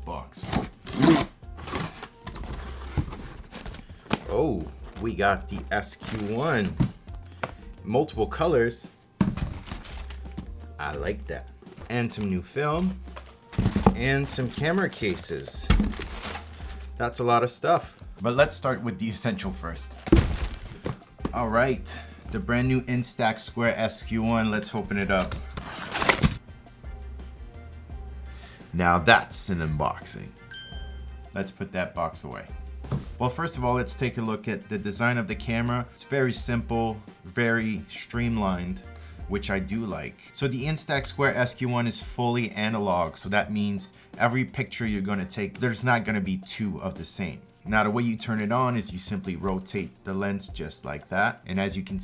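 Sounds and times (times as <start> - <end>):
soft background music: 0.0 - 52.0
cardboard rustling and scraping: 0.4 - 7.0, 9.2 - 10.2, 11.7 - 16.9, 20.0 - 21.4, 25.0 - 26.4.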